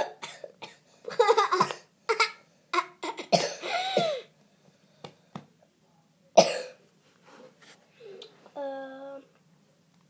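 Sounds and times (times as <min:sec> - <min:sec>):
girl coughing: 0:00.0 - 0:00.8, 0:03.0 - 0:04.3, 0:06.4 - 0:06.8.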